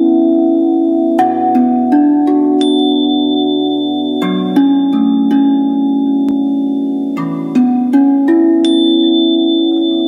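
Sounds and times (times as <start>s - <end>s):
bell-like chord ringing: 0.0s - 10.0s.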